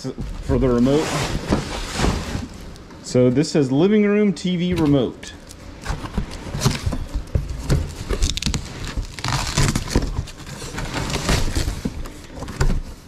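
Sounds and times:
rustling and crinkling: 0:00.0 - 0:03.9, 0:04.6 - 0:13.0
cardboard box being opened: 0:05.4 - 0:13.0.

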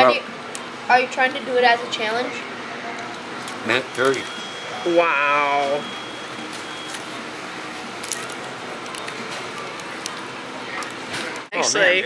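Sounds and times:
steady room hum: 0:00.0 - 0:12.0.

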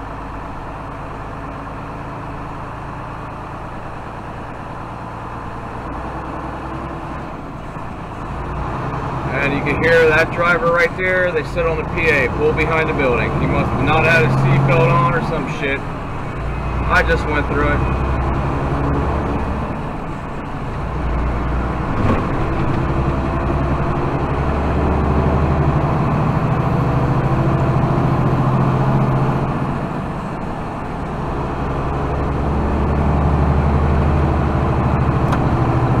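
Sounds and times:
road noise: 0:00.0 - 0:36.0
truck engine running: 0:00.0 - 0:36.0.

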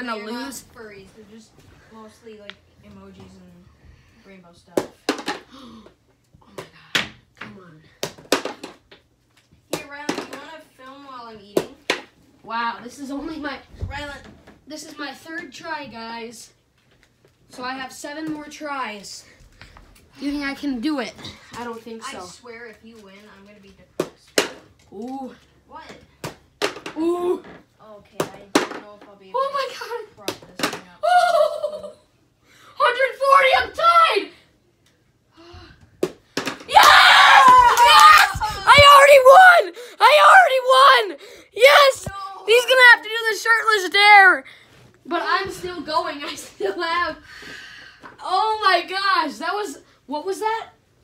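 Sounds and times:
excited vocal exclamations: 0:36.7 - 0:44.5.

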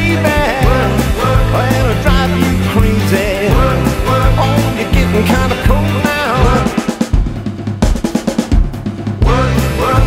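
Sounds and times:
drum kit playing rock break: 0:00.0 - 0:10.0.

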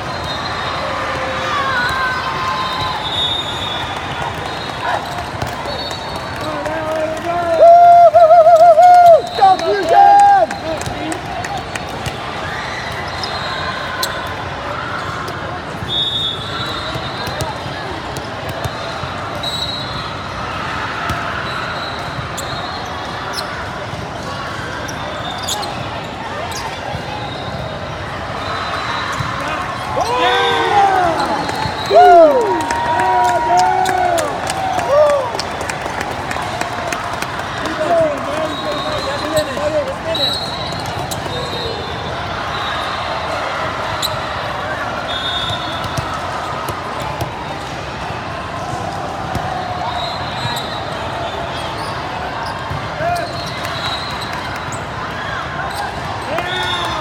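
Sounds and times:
crowd chatter: 0:00.0 - 0:57.0
short high whistle blasts: 0:15.9 - 0:17.2
people shouting: 0:29.4 - 0:35.3.

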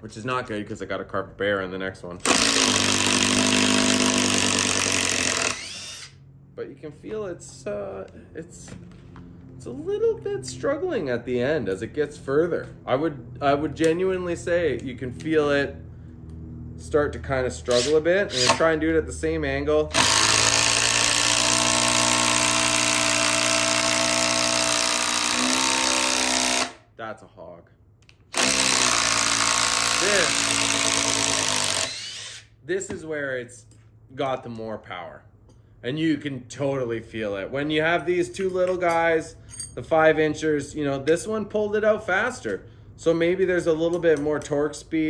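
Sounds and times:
impact driver hammering: 0:02.2 - 0:06.1, 0:17.7 - 0:18.7, 0:19.9 - 0:26.8, 0:28.3 - 0:33.0
motor whine winding down: 0:02.3 - 0:06.2, 0:17.7 - 0:18.7, 0:28.4 - 0:32.4.

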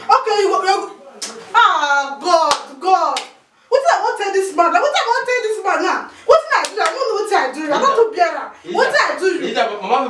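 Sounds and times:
woman speaking: 0:00.0 - 0:09.4
sharp hand clap: 0:02.5 - 0:03.4, 0:06.6 - 0:07.1.

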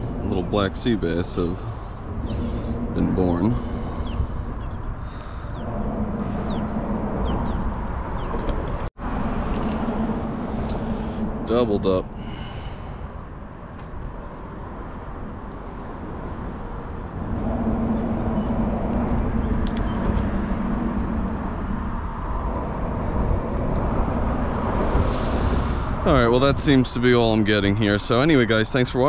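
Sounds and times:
distant engine hum: 0:00.0 - 0:29.0
low outdoor rumble: 0:00.0 - 0:29.0.

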